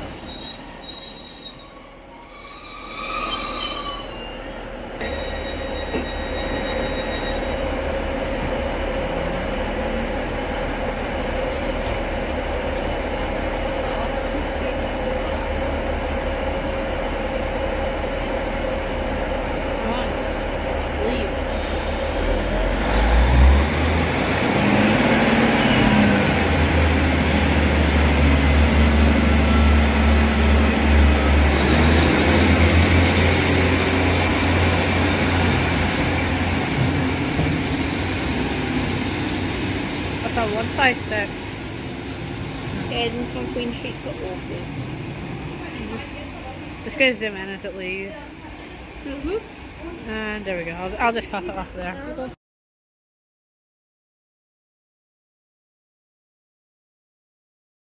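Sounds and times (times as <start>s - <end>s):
diesel train engine: 0.0s - 52.4s.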